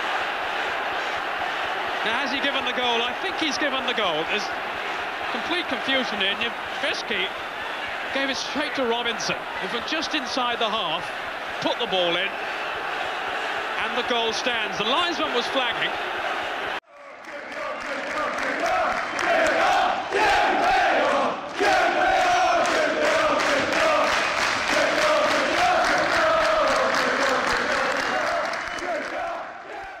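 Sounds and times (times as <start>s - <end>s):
crowd chanting to a beat: 0.0s - 2.1s, 16.0s - 30.0s.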